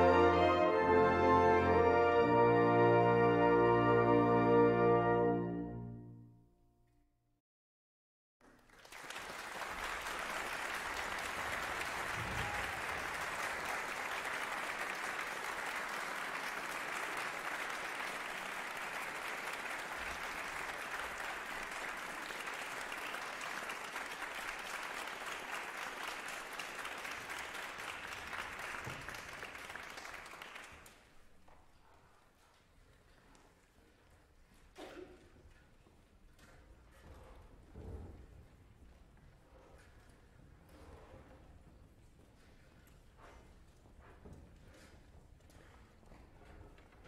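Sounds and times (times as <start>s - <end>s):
audience applauding: 8.4s - 31.4s.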